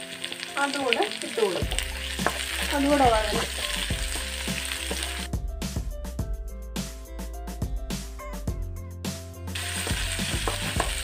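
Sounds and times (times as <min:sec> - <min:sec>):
vegetables sizzling in hot oil: 0:00.0 - 0:05.3, 0:09.6 - 0:11.0
background music with steady beat: 0:01.6 - 0:11.0.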